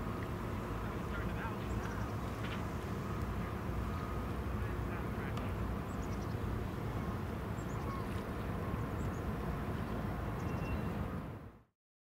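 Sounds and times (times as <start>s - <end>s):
low harbour rumble: 0.0s - 11.6s.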